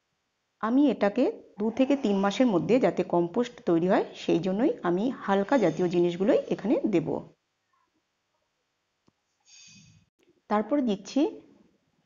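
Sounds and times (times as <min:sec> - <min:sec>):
woman speaking: 0:00.6 - 0:07.3, 0:10.5 - 0:11.4.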